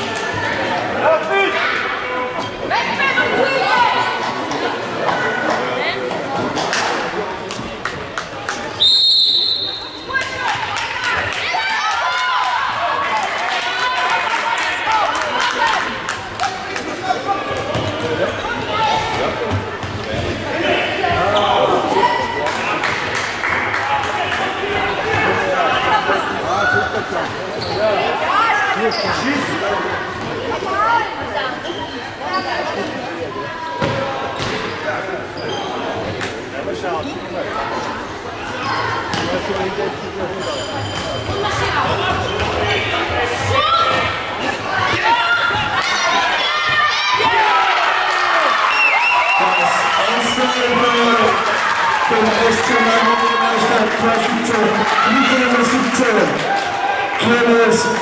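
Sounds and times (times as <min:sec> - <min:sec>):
referee's whistle: 0:08.8 - 0:10.1
people shouting: 0:44.8 - 0:49.6.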